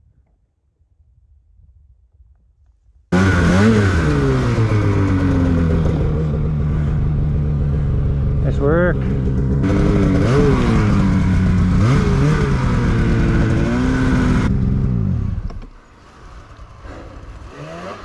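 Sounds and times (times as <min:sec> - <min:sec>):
snowmobile engine revving: 0:03.1 - 0:18.0.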